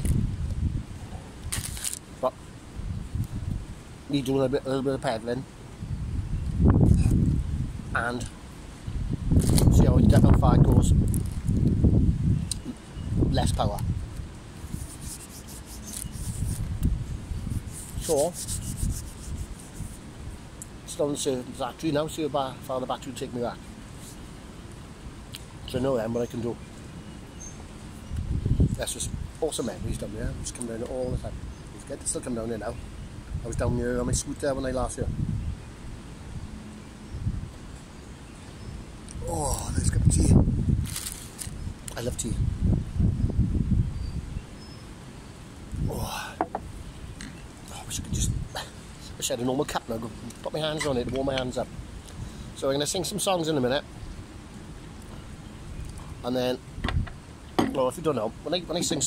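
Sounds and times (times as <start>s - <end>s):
wind buffeting microphone: 0.0s - 1.8s, 2.6s - 3.9s, 5.7s - 20.5s, 28.0s - 37.7s, 39.2s - 44.6s, 45.6s - 49.3s, 55.2s - 57.9s.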